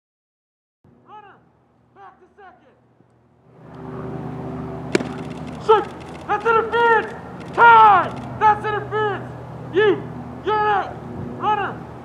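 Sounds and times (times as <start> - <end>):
steady low hum: 2.8 - 10.4
baseball smacking into mitt: 4.9 - 5.7.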